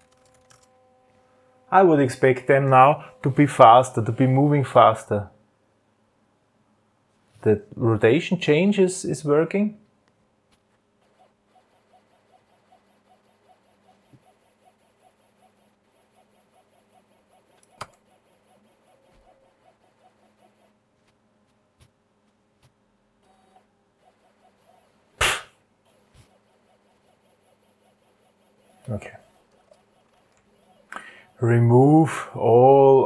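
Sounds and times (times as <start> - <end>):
stepper motor ticking: 11.0 - 20.8, 23.2 - 32.8.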